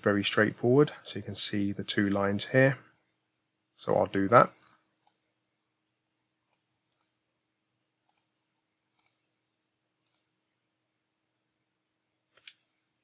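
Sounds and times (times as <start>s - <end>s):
computer mouse clicks: 6.5s - 7.2s, 8.0s - 9.2s, 10.0s - 10.3s, 12.3s - 12.7s.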